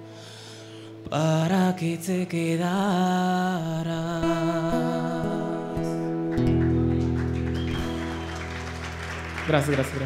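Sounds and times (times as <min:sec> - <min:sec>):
acoustic guitar chord ringing: 0:03.8 - 0:08.9
audience applauding: 0:06.3 - 0:10.0.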